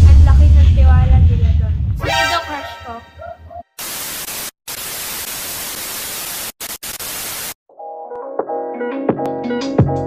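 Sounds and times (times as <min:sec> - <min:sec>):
television static hiss: 0:03.8 - 0:07.6
background music: 0:07.7 - 0:10.0.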